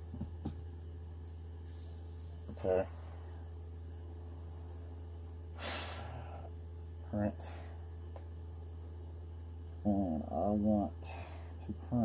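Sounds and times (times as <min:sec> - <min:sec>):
steady low hum: 0:00.0 - 0:12.0
person exhaling through a face mask: 0:05.6 - 0:06.5.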